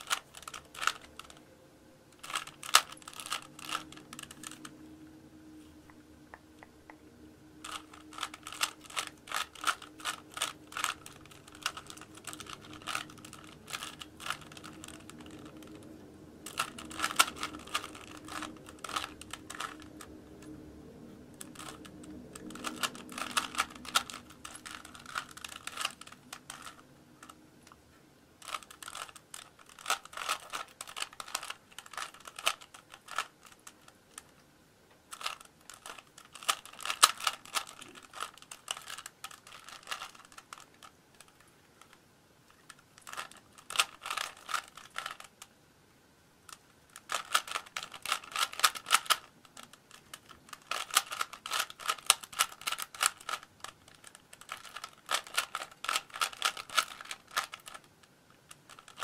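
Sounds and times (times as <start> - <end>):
puzzle cube layers clicking: 0.0 - 1.4, 2.2 - 4.7, 7.6 - 15.9, 16.5 - 20.1, 21.4 - 27.4, 28.4 - 34.3, 35.1 - 42.0, 43.0 - 45.4, 47.0 - 57.9.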